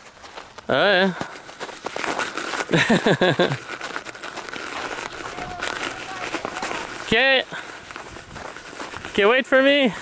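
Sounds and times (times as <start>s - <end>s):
snow crunching: 0.0s - 10.0s.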